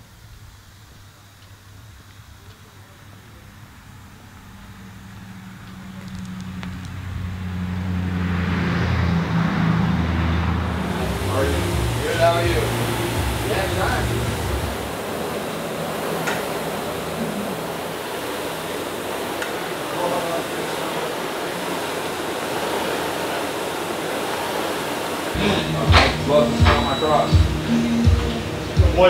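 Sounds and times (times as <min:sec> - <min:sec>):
low hum: 0:00.0 - 0:19.8
fan-like rushing noise: 0:00.0 - 0:29.0.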